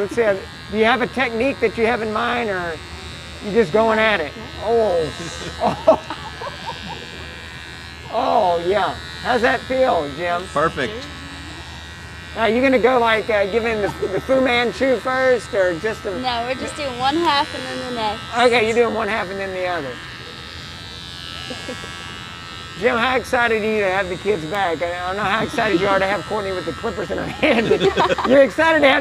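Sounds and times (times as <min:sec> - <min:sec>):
electric hair clippers buzzing: 0:00.0 - 0:29.0.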